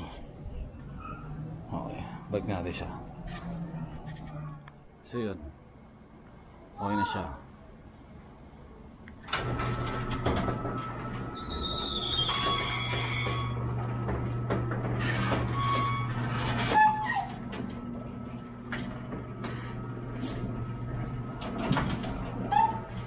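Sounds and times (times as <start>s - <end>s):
gate motor humming: 9.2s - 23.0s
gate squeal: 11.4s - 13.8s, 14.9s - 17.6s, 22.5s - 23.0s.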